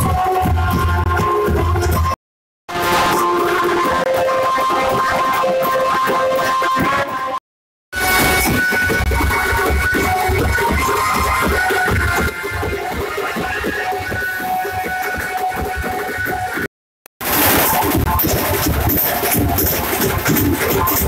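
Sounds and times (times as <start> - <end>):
snare and bass drum beats: 8.0 - 21.0.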